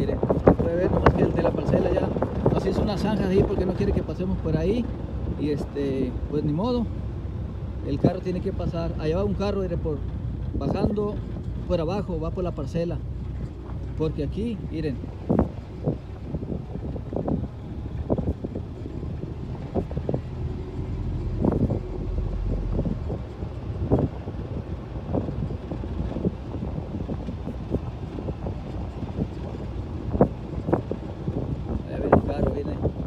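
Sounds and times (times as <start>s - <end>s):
tyre and wind rumble: 0.0s - 33.0s.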